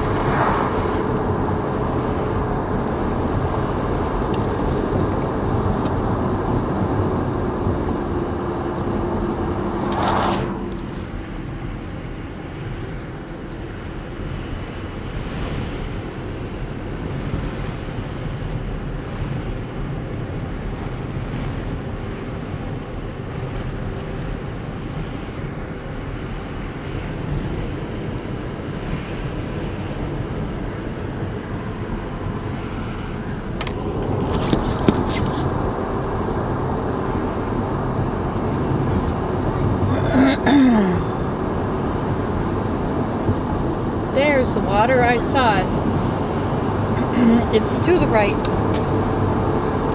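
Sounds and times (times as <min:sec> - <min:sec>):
car road and engine noise: 0:00.0 - 0:49.9.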